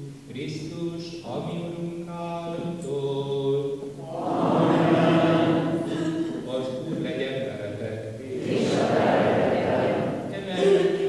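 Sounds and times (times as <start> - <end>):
hymn sung in church: 0.0 - 11.0.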